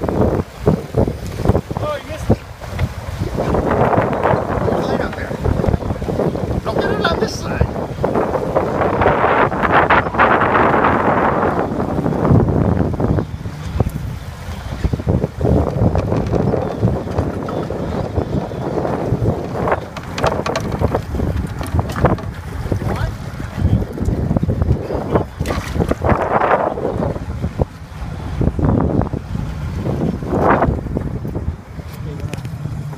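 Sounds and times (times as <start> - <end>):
water and boat rumble: 0.0 - 32.9
wind buffeting microphone: 0.0 - 32.9.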